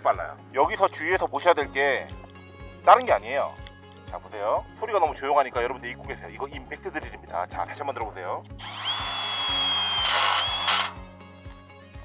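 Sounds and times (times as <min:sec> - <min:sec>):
impact driver whining: 0:08.6 - 0:11.0.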